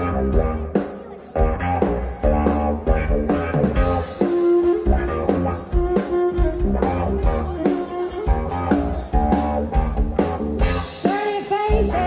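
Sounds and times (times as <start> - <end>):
drum kit: 0.0 - 12.0
electric guitar melody: 0.0 - 12.0.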